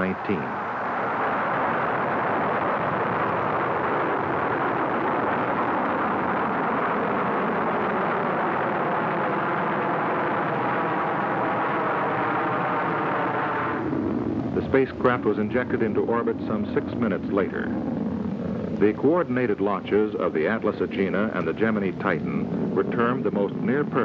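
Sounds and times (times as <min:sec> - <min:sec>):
rocket engine roar: 0:00.0 - 0:24.0.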